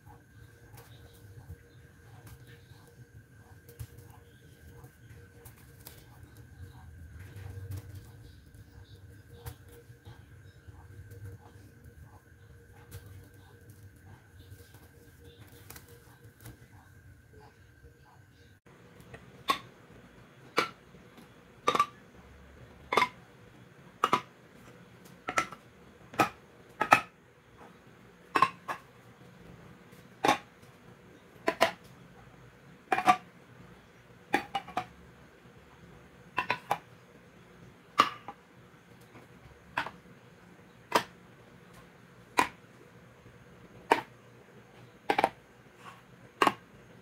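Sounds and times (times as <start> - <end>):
metal cans clacking on stone countertop: 21.6 - 22.0, 22.9 - 23.2, 24.0 - 24.3, 25.3 - 25.6, 28.3 - 28.8, 36.4 - 36.9.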